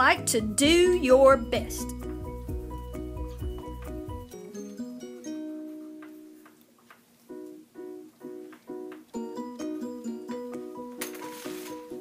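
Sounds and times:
plucked string chords: 0:00.0 - 0:06.6.

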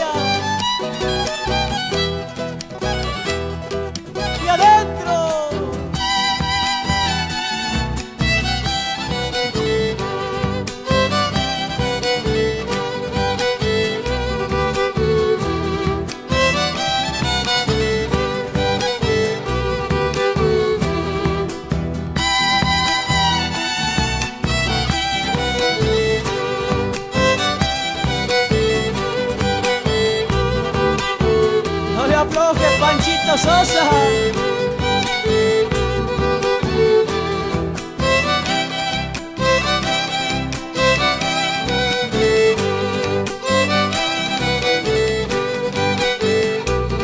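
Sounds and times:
guitar: 0:00.0 - 0:47.0
violin melody: 0:00.0 - 0:47.0.

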